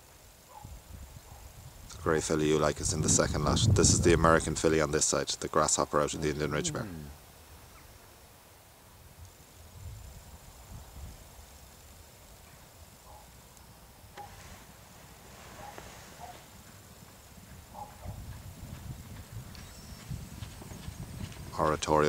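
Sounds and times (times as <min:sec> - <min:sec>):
muffled hoofbeats of horses cantering: 0:15.1 - 0:22.0.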